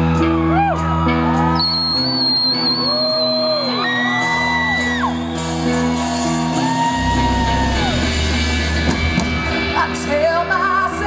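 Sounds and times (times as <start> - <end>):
crowd whooping and shouting: 0.0 - 10.6
rock band playing chords: 0.0 - 11.0.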